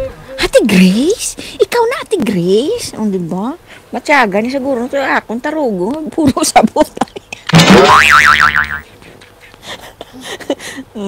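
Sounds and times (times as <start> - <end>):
cartoon boing twang: 7.5 - 8.8.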